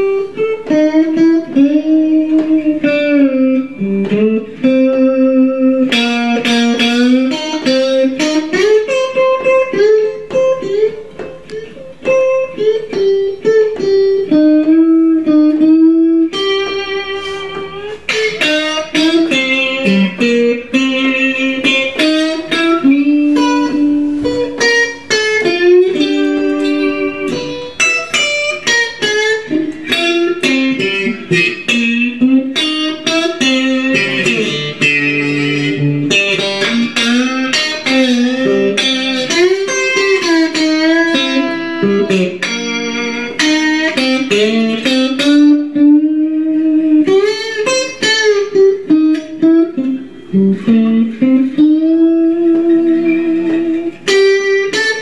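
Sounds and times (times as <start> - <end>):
electric guitar single notes: 0.0 - 55.0.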